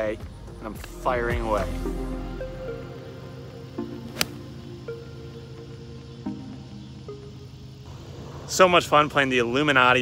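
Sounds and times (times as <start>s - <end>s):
background music with held notes: 0.0s - 8.2s
golf club striking ball: 4.1s - 4.4s.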